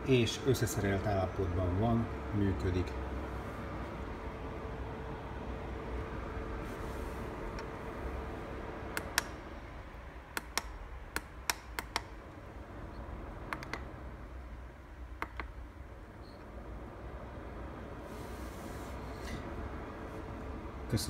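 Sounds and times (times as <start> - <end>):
humidifier humming: 0.0 - 21.0
button clicks: 13.5 - 13.9.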